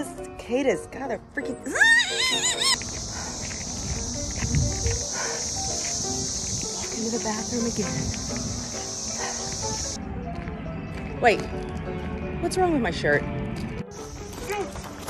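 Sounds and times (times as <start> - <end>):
background music: 0.0 - 15.0
high cicada buzz: 1.8 - 10.0, 13.9 - 14.9.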